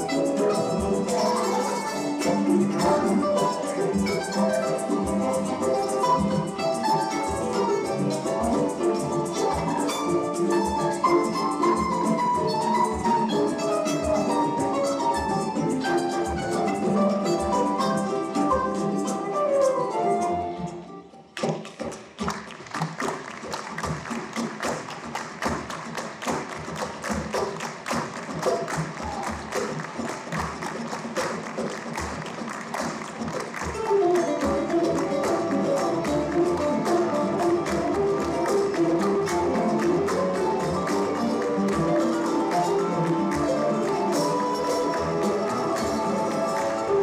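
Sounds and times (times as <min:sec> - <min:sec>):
rhythmic hand clapping: 0:00.0 - 0:20.2, 0:21.3 - 0:47.0
plucked string ensemble with tambourine: 0:00.0 - 0:47.0
percussive taps: 0:21.4 - 0:47.0.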